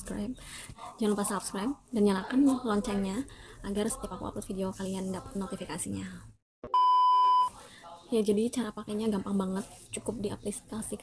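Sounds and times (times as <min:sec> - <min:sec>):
electronic beep: 0:06.6 - 0:07.5.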